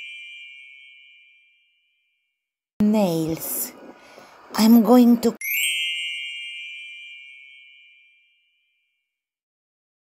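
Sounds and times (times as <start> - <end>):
bell-like ding: 0.0 - 2.2.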